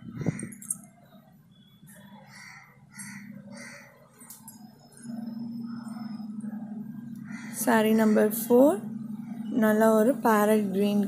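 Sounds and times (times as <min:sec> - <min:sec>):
steady low hum: 0:00.0 - 0:11.0
bird calling: 0:02.0 - 0:04.1, 0:05.1 - 0:09.9.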